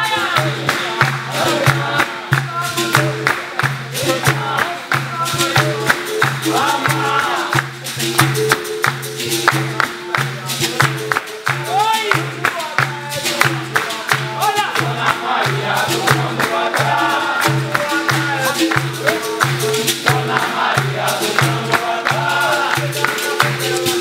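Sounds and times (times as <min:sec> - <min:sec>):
berimbaus playing: 0:00.0 - 0:24.0
drum steady beat: 0:00.0 - 0:24.0
group singing: 0:00.0 - 0:24.0
people clapping: 0:00.0 - 0:24.0.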